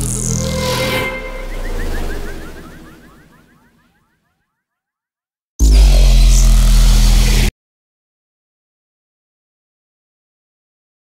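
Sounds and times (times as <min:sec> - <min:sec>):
sci-fi portal rumble and hiss: 0:05.6 - 0:07.5.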